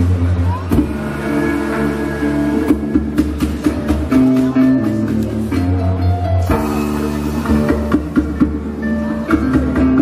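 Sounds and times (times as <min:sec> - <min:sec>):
bowed bass drone: 0:00.0 - 0:10.0.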